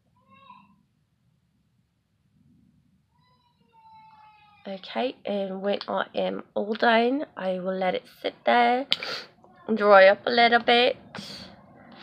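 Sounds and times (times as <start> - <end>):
faint high-pitched animal cries: 0.1 - 0.8, 3.2 - 4.7.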